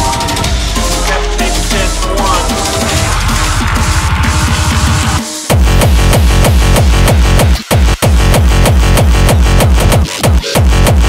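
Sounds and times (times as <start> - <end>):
distorted hardcore electronic music: 0.0 - 11.0
heavily distorted kick drums: 0.0 - 11.0.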